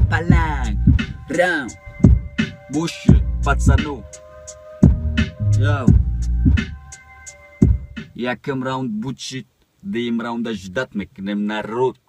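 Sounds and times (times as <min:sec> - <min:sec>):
deep bass hits: 0:00.0 - 0:04.1, 0:04.8 - 0:06.9, 0:07.6 - 0:08.1
hip-hop beat: 0:00.0 - 0:08.2.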